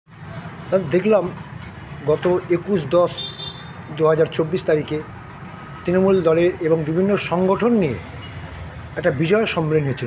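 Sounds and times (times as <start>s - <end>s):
man speaking: 0.7s - 1.4s, 2.0s - 3.3s, 3.9s - 5.1s, 5.8s - 8.1s, 9.0s - 10.0s.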